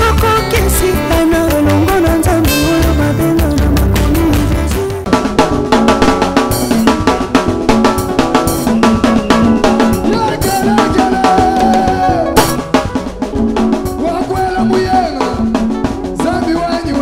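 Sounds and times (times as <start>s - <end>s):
drum kit snare and kick: 0.0s - 17.0s
live band dance music: 0.0s - 17.0s.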